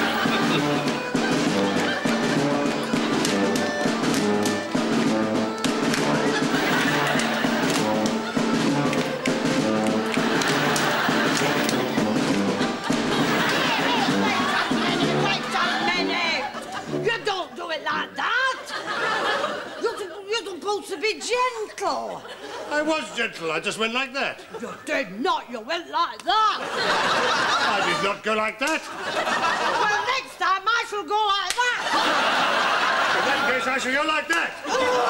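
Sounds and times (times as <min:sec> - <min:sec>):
dancers slapping and stamping: 0:00.0 - 0:15.6
brass band playing folk dance: 0:00.0 - 0:18.2.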